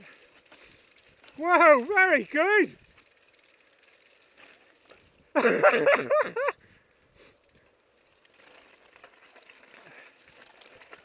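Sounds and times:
person laughing loudly: 0:05.3 - 0:06.6.

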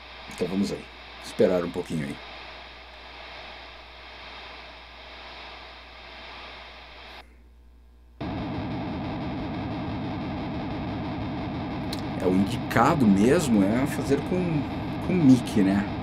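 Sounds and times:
pulsing hiss: 0:00.0 - 0:07.2, 0:08.2 - 0:16.0
distorted warbling guitar buzz: 0:08.2 - 0:16.0.

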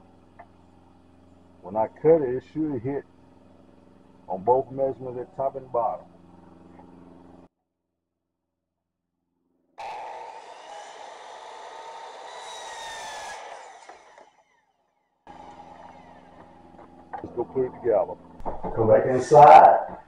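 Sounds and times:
miter saw whining: 0:00.0 - 0:07.5, 0:09.8 - 0:20.0.

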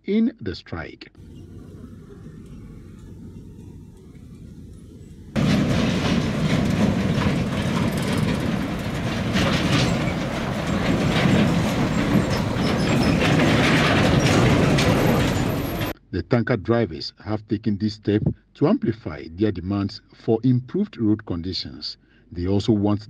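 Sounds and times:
trailer rattling over ruts: 0:01.2 - 0:16.0
truck engine rumble: 0:01.2 - 0:16.0.

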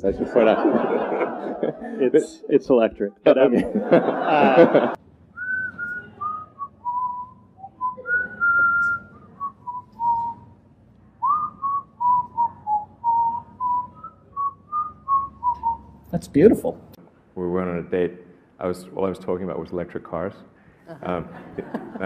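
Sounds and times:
man whistling a tune: 0:05.4 - 0:10.5, 0:11.2 - 0:16.0.

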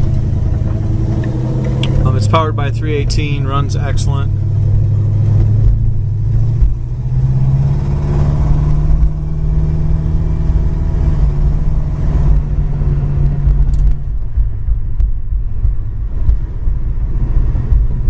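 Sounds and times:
car engine running: 0:00.0 - 0:18.0
low road rumble: 0:00.0 - 0:18.0.

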